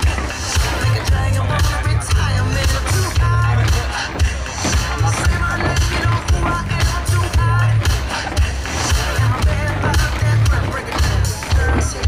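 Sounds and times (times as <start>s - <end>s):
person singing: 0.0s - 12.0s
pop music with bass beat: 0.0s - 12.0s
tap shoes clicking on stage: 0.0s - 12.0s.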